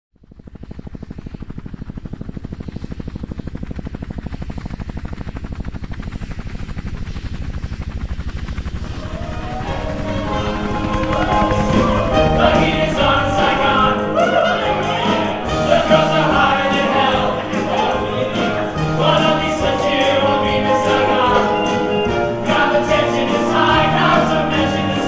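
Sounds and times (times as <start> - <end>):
helicopter rotor chop: 0.2 - 25.0
orchestral music: 8.9 - 25.0
voices: 8.9 - 25.0.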